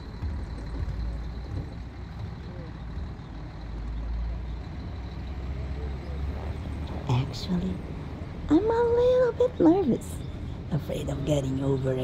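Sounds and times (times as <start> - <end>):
bus engine drone: 0.0 - 12.0.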